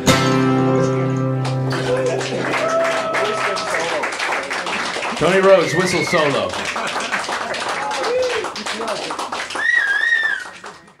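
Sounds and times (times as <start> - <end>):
hand claps: 1.4 - 11.0
person whistling: 9.6 - 10.6.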